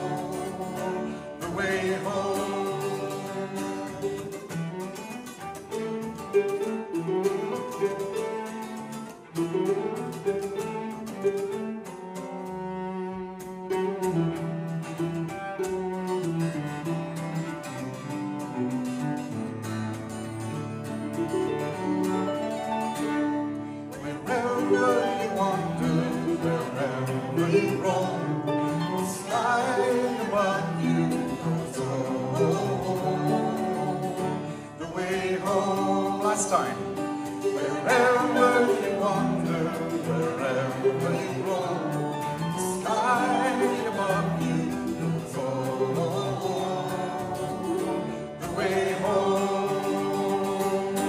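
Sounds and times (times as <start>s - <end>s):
acoustic guitar: 0.0s - 51.0s
bowed cello: 0.0s - 51.0s
harp: 0.0s - 51.0s.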